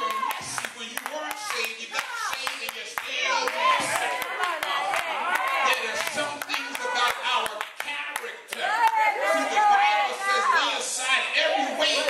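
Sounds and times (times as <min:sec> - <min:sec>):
congregation clapping: 0:00.0 - 0:10.1
raised voices calling out: 0:08.6 - 0:12.0.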